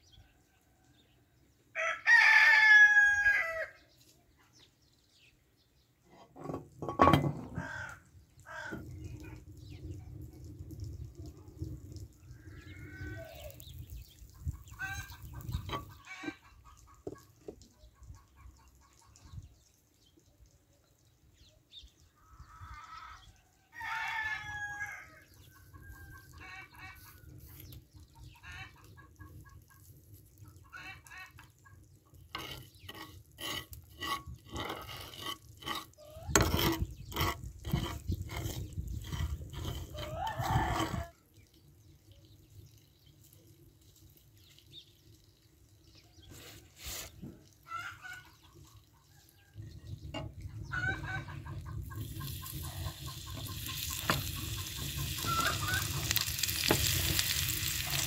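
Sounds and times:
rooster crowing: 1.8s - 3.8s, 23.7s - 25.2s, 39.9s - 41.1s, 55.2s - 56.2s
chickens clucking: 14.2s - 19.6s, 25.3s - 34.2s, 46.2s - 58.0s.

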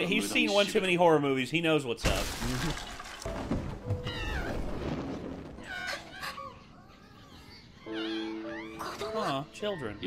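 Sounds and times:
high wavering cries: 5.7s - 10.0s.

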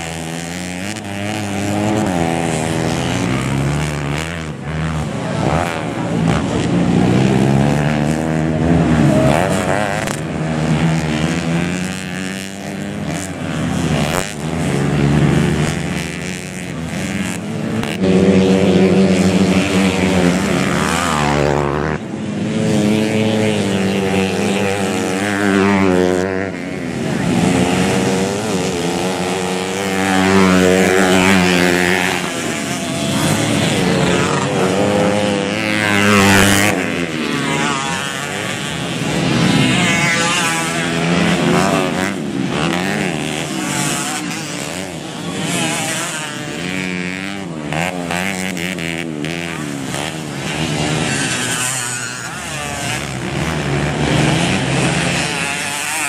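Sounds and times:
dirt bike engines revving: 0.0s - 56.0s.

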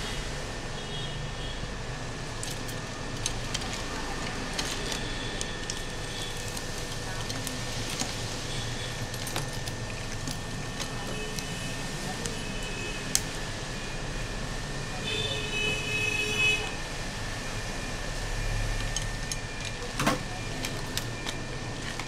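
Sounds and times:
steady background hum: 0.0s - 22.0s.

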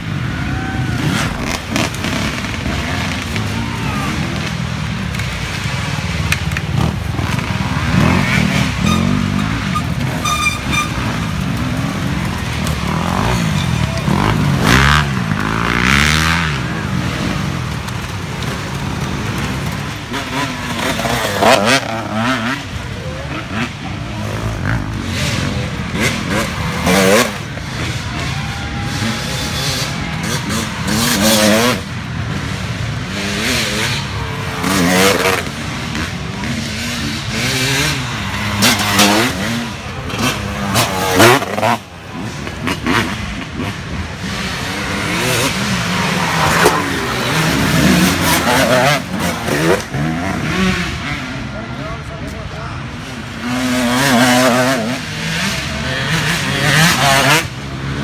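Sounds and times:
dirt bike engines revving: 0.0s - 58.0s.

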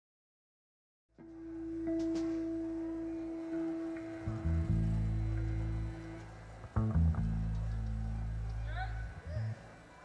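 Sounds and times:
low bass notes: 1.2s - 9.6s.

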